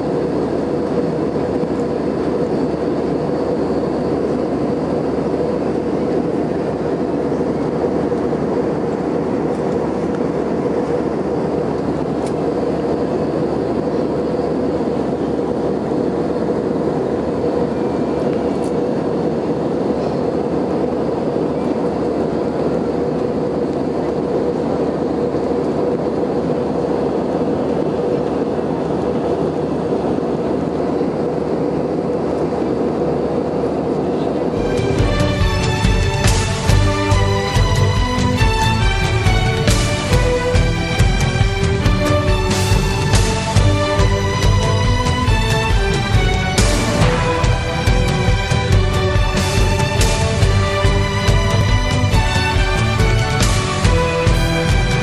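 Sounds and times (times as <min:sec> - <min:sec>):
aircraft cabin engine roar: 0:00.0 - 0:55.0
steady hum: 0:00.0 - 0:55.0.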